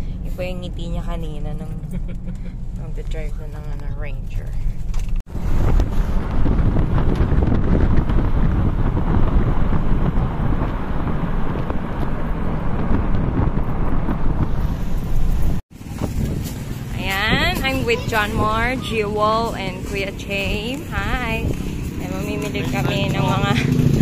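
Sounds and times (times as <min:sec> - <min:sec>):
car road noise: 0:00.0 - 0:24.0
street noise: 0:00.0 - 0:24.0
wind buffeting microphone: 0:04.7 - 0:24.0.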